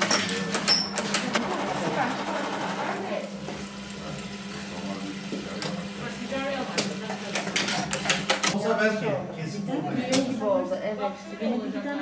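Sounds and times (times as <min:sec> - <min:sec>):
sewing machine stitching: 0:00.0 - 0:03.3.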